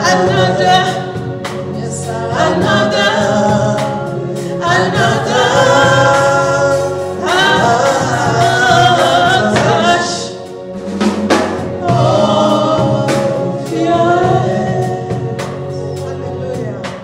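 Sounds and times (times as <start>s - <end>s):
gospel worship singing: 0.0s - 17.0s.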